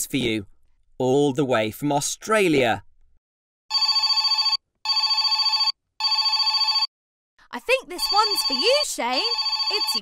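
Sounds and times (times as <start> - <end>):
telephone ringing: 3.7 - 6.9, 7.9 - 10.0.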